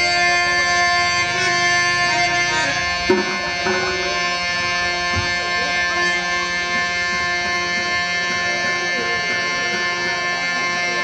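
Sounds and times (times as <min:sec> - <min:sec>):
sustained harmonium chord: 0:00.0 - 0:11.0
wavering melody line: 0:02.4 - 0:05.5
short knock: 0:03.1 - 0:04.2.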